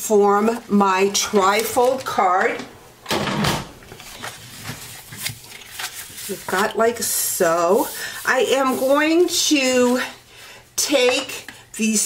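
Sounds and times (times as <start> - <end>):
paper rustling and creasing: 3.9 - 7.1.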